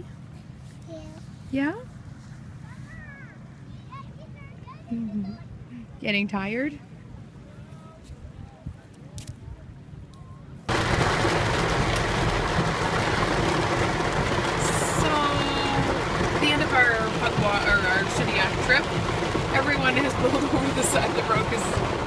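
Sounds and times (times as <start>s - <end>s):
road noise: 0.0s - 22.0s
heavy rain on car: 10.7s - 22.0s.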